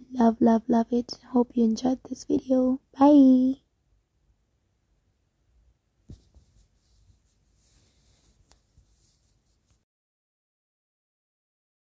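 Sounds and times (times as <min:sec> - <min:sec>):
faint background hiss: 0:00.0 - 0:09.8
light rustling: 0:06.1 - 0:09.8.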